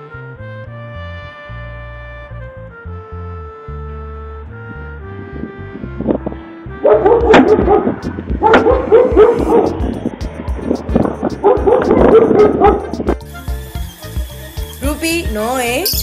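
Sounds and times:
background music with beat: 0:01.7 - 0:16.0
dog barking: 0:06.8 - 0:09.8, 0:11.4 - 0:13.0.

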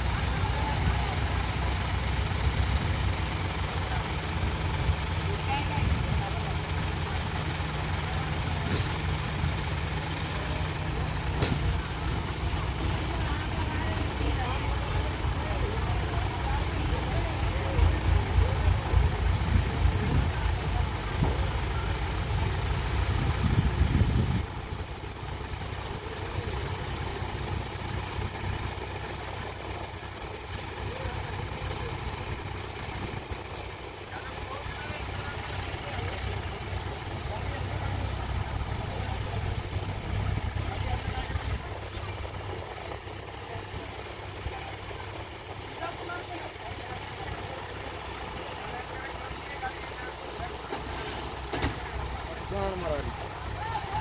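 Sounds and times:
crane diesel engine under load: 0:00.0 - 0:54.0.

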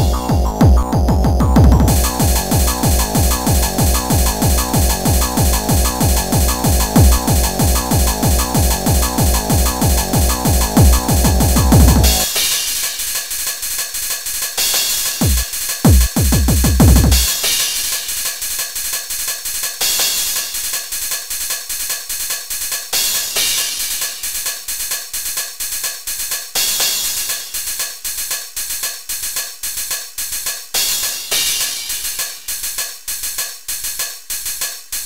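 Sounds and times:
falling-pitched electronic hits: 0:00.0 - 0:12.3
drum-machine beat with hi-hats: 0:00.0 - 0:35.0.

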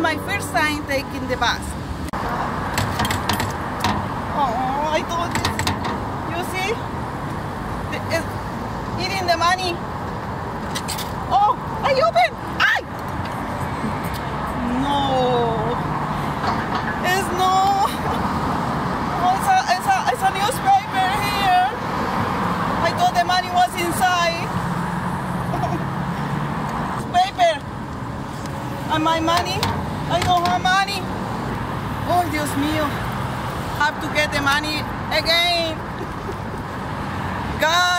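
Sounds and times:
street traffic: 0:00.0 - 0:37.9
vehicle engine humming: 0:00.0 - 0:37.9
metal clanks: 0:02.7 - 0:04.1, 0:05.2 - 0:06.1.

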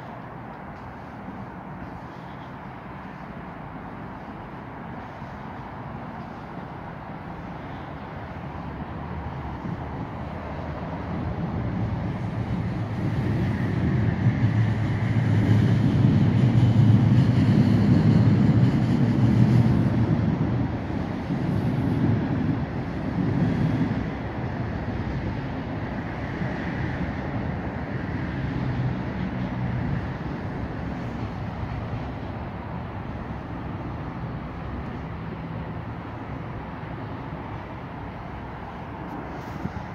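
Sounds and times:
traffic rumble: 0:00.0 - 0:39.9
vehicle passing: 0:00.0 - 0:39.9.

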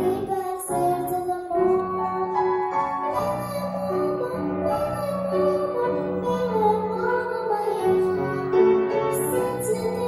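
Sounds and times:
girl singing into a microphone: 0:00.0 - 0:10.0
grand piano: 0:00.0 - 0:10.0.

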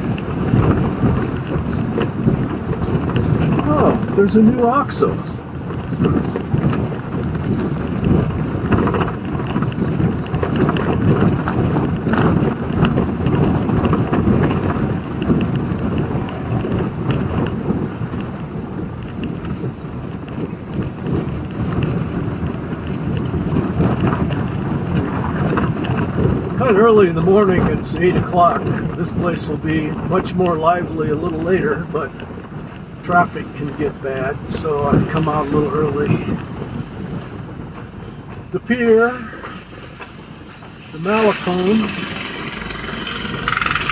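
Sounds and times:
tyres rumbling on cobblestones: 0:00.0 - 0:43.9.

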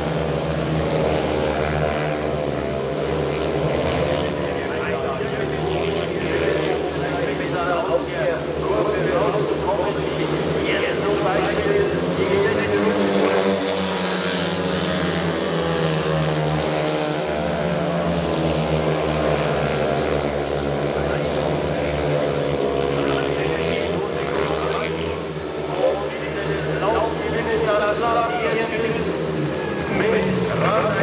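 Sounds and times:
motorcycle engines racing: 0:00.0 - 0:31.0.

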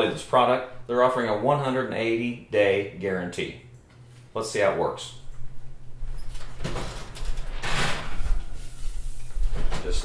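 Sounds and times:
oven door opening: 0:06.2 - 0:08.7.

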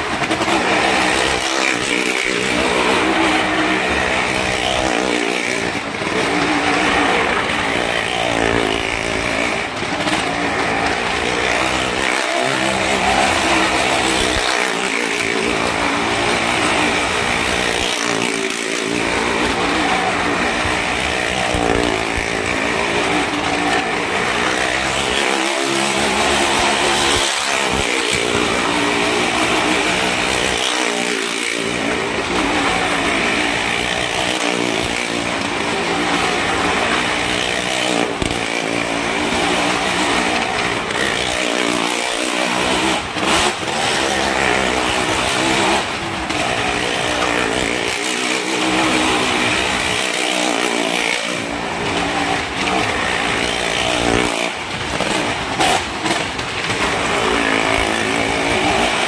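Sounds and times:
car engine revving: 0:00.0 - 0:59.0
motorcycle engine revving: 0:00.0 - 0:59.0.

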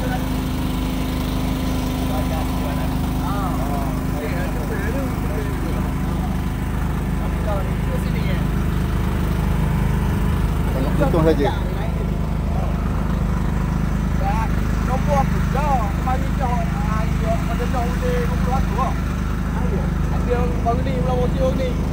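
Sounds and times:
boat engine humming: 0:00.0 - 0:21.9
faint voices: 0:01.4 - 0:09.4.

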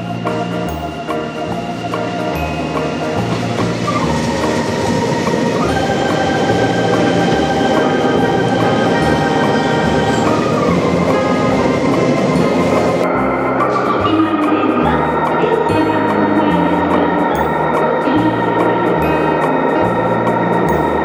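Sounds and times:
background music: 0:00.0 - 0:21.0
electric train rumbling past: 0:00.0 - 0:21.0.

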